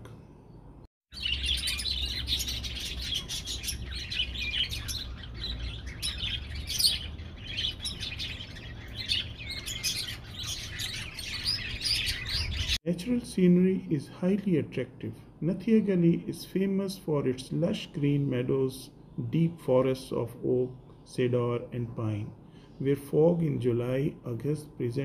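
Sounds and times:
small birds chirping: 0:00.3 - 0:12.8.

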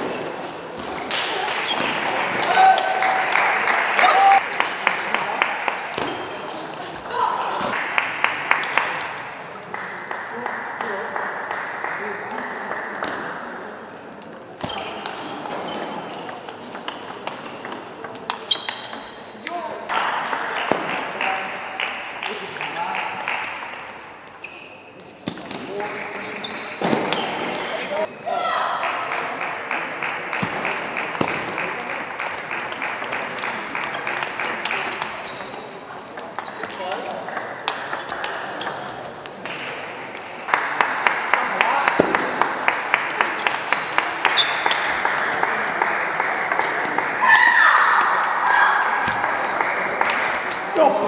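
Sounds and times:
background voices in a hall: 0:00.0 - 0:51.0.

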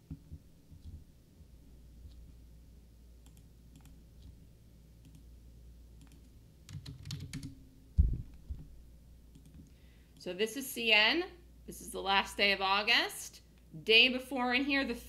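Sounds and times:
keyboard keystrokes: 0:06.0 - 0:07.5.

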